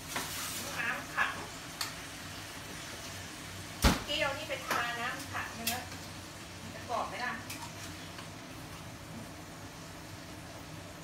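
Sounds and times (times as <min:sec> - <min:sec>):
fat sizzling in roasting pan: 0:00.0 - 0:11.0.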